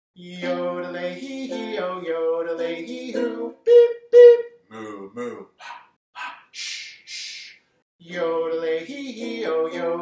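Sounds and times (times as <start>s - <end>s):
man making shushing sounds: 3.7s - 7.6s.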